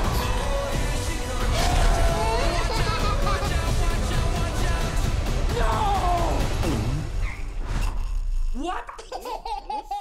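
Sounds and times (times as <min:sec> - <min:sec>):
trailer music: 0:00.0 - 0:08.6
high-pitched cartoon voice giggling: 0:02.2 - 0:03.6, 0:08.9 - 0:10.0.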